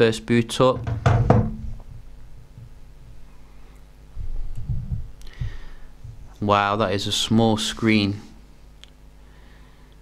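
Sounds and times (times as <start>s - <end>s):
faint steady hum: 0.0s - 10.0s
phone knocking on wooden desk: 0.8s - 1.8s.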